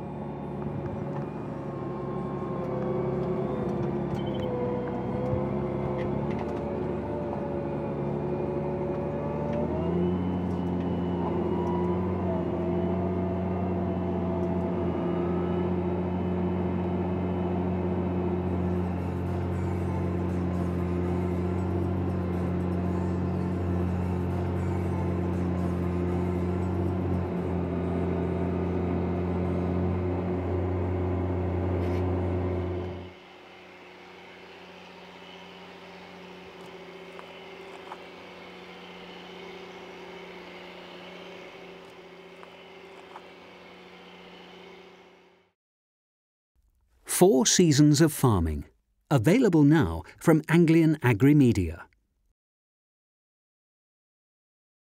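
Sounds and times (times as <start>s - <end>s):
tractor diesel engine droning: 0.0s - 45.5s, 47.1s - 51.8s.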